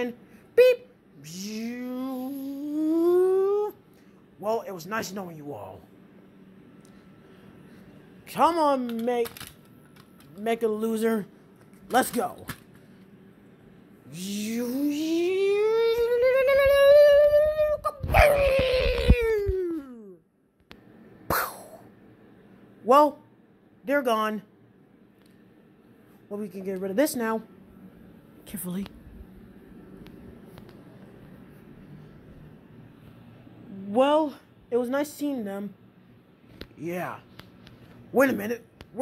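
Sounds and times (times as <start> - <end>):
person humming rising tone: 1.2 - 3.7, 14.1 - 20.2
person making teleport mouth sound: 1.2 - 3.8, 14.1 - 20.0, 21.3 - 21.8.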